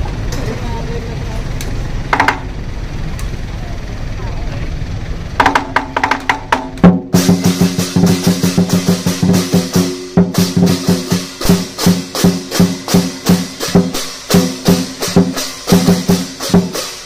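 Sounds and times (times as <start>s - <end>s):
drum and cymbals beat: 5.4s - 17.0s.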